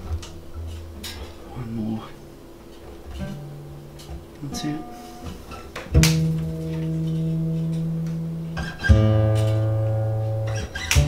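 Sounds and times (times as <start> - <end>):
low guitar string ringing: 2.7 - 11.0
plucked guitar string note: 3.1 - 11.0.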